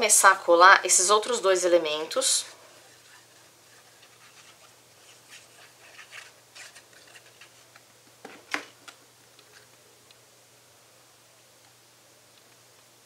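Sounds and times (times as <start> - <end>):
paper rustling and scratching: 2.8 - 8.8.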